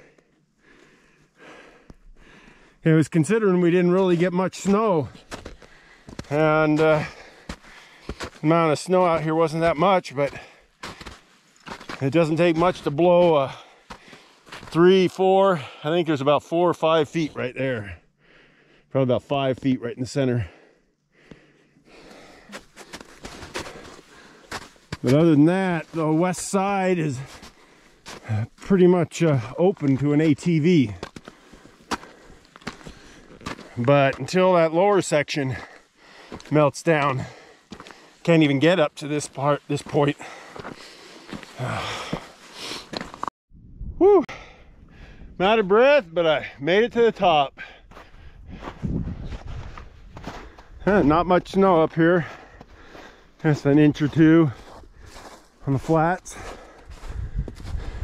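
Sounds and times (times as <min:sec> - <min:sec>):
heavy breathing: 0:00.0 - 0:02.8, 0:05.6 - 0:06.3, 0:06.9 - 0:08.4, 0:17.9 - 0:18.9, 0:20.4 - 0:24.7, 0:31.2 - 0:33.8, 0:35.5 - 0:36.5, 0:37.2 - 0:38.2, 0:40.1 - 0:43.2, 0:47.5 - 0:49.4, 0:52.2 - 0:53.4, 0:56.2 - 0:58.0
footsteps in snow: 0:04.6 - 0:14.8, 0:22.0 - 0:34.4, 0:35.5 - 0:43.3, 0:47.9 - 0:58.0.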